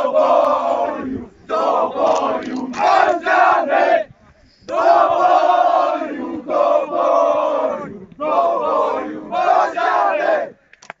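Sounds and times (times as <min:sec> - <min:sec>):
young men chanting in unison: 0:00.0 - 0:04.1, 0:04.7 - 0:10.6.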